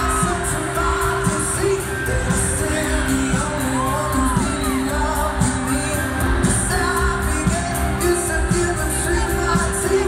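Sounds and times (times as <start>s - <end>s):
live pop band playing: 0.0s - 10.0s
singer singing: 0.0s - 10.0s.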